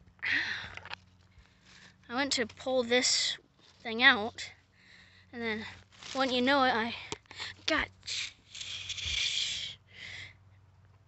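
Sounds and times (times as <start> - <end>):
person hissing in pain: 8.1 - 9.8.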